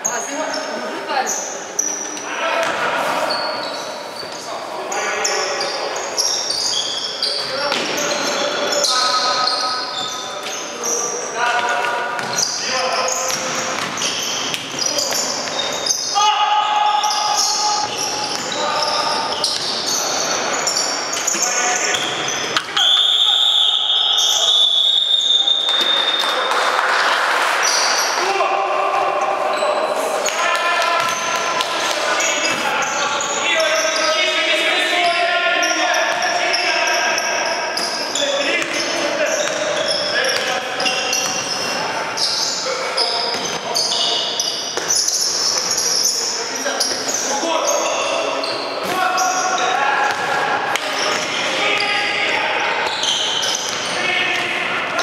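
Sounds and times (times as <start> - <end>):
players calling out: 0.0 - 55.0
basketball bouncing on court: 11.6 - 12.5, 13.2 - 16.0, 17.3 - 20.0, 30.9 - 31.7, 38.6 - 41.8, 43.2 - 43.6, 52.2 - 54.6
referee's whistle blast: 22.7 - 26.3.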